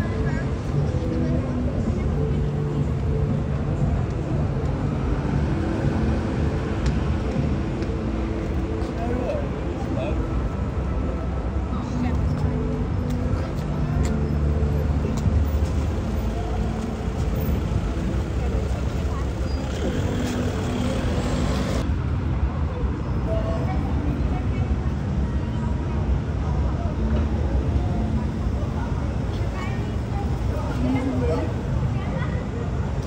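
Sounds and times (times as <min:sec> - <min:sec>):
people talking: 0:00.0 - 0:04.7, 0:11.6 - 0:15.2, 0:16.4 - 0:21.8, 0:22.7 - 0:33.0
car engines rumbling: 0:00.0 - 0:33.0.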